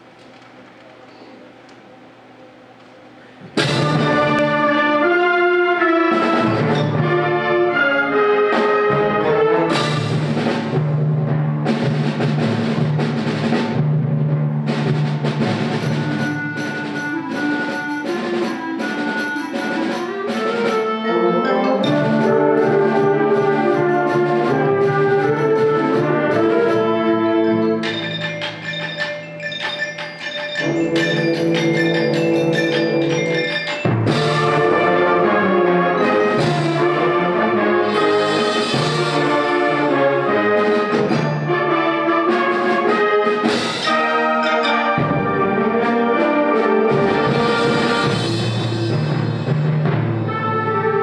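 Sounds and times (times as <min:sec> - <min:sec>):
concert band playing: 0:03.2 - 0:51.0.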